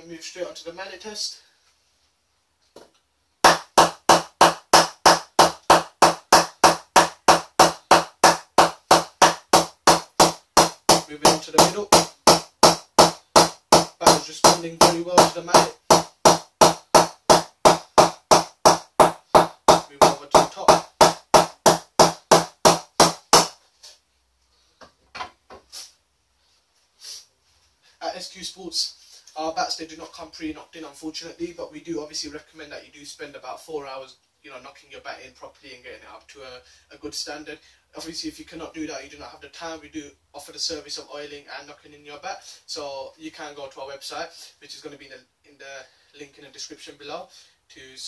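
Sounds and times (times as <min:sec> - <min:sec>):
mallet knocking cricket bat: 0:03.4 - 0:23.6
faint knocks and rustles of handling: 0:23.6 - 0:25.8.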